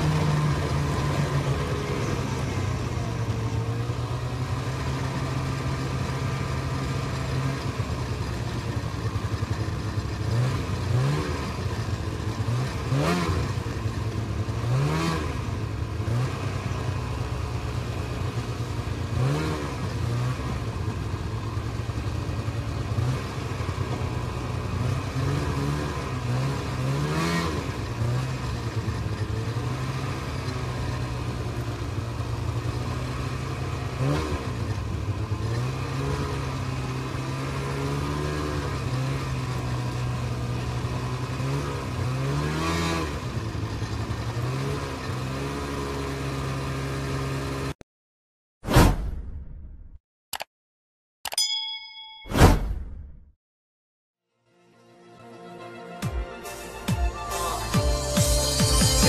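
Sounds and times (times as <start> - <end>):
snowmobile engine revving: 0.0 - 31.7, 32.4 - 47.8.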